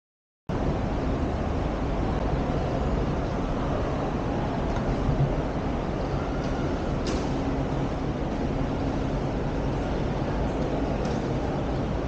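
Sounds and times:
city traffic rumble: 0.5 - 12.0
faint engine hum: 0.5 - 12.0.

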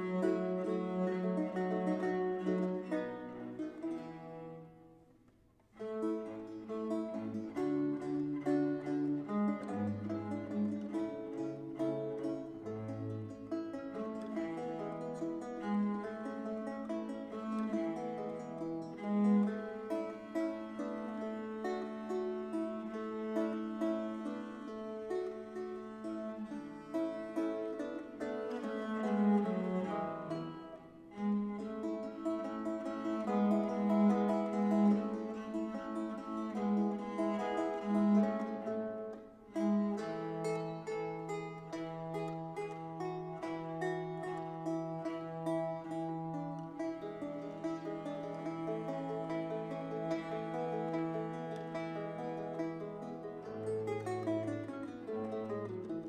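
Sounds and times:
bowed viola da gamba: 0.0 - 56.0
plucked guitar chords: 5.8 - 56.0.

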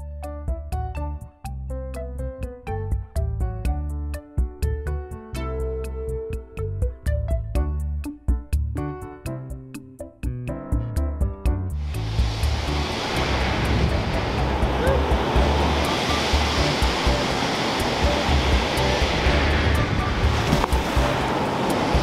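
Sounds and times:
music with bass and beat: 0.0 - 22.0
waves breaking and washing in: 11.8 - 22.0.

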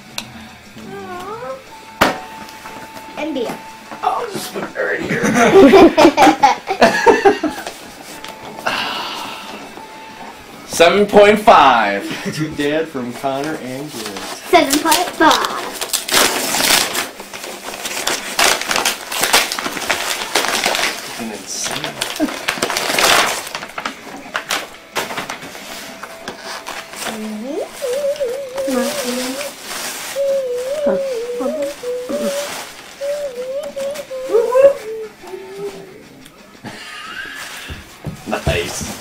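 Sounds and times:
paper gift bag rustling: 11.2 - 36.1, 37.2 - 39.0
wavering voice-like pitched sound: 27.2 - 36.2.

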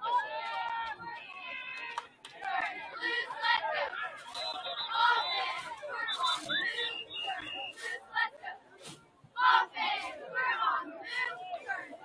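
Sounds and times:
spectators shouting: 0.0 - 12.0.

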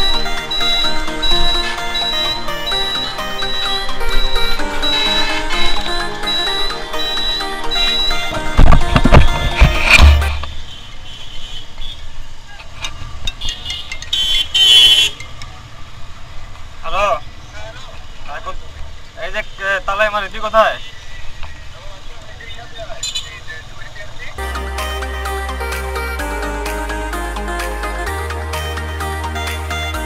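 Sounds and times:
background music: 0.0 - 10.6, 24.4 - 30.0
vehicle horn honking: 0.0 - 12.0, 13.4 - 15.2
wind noise: 8.3 - 10.6.

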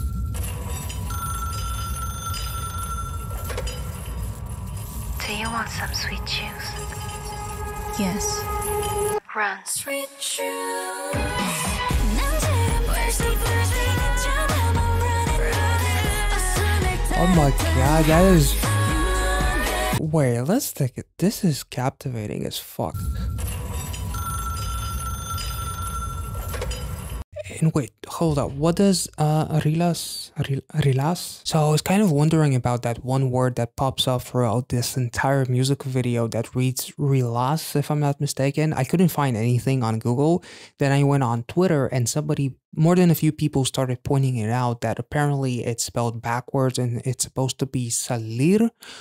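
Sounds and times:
old telephone ringing: 0.4 - 4.0, 23.9 - 27.0
steady high telephone tone: 24.2 - 26.4.

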